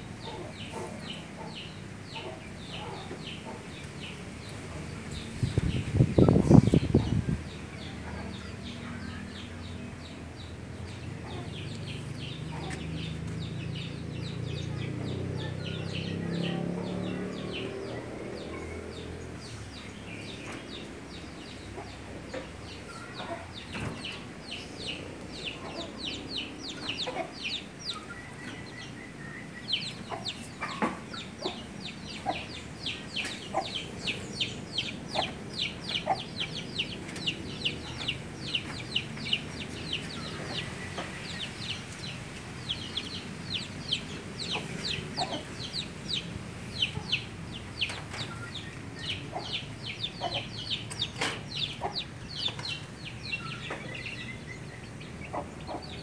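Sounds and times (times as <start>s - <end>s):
birds peeping: 0.0s - 56.0s.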